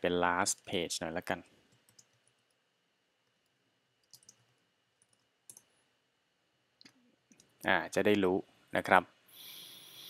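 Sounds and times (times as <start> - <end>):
computer keyboard clicks: 1.7 - 2.4, 4.0 - 4.4.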